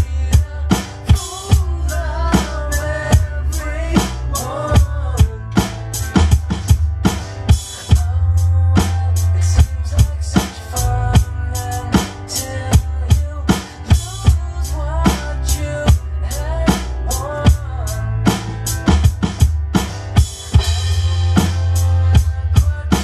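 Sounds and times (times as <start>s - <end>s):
electronic drum kit rock beat: 0.0s - 23.0s
recorded rock song: 0.0s - 23.0s.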